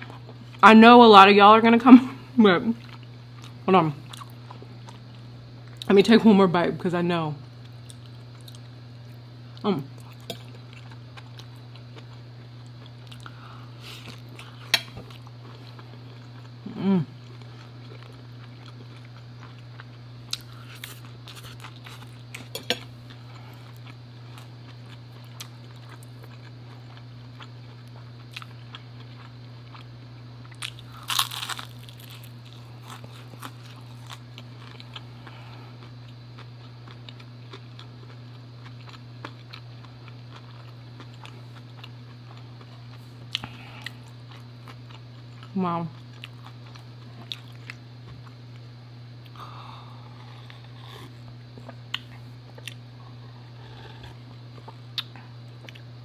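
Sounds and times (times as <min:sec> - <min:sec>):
steady low hum: 0:00.0 - 0:56.0
crunching bite into fried food: 0:30.5 - 0:35.1.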